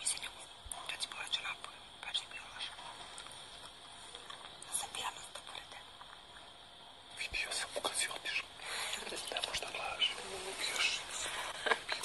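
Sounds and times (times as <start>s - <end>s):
people whispering: 0.0s - 3.4s, 4.0s - 5.9s, 7.1s - 12.0s.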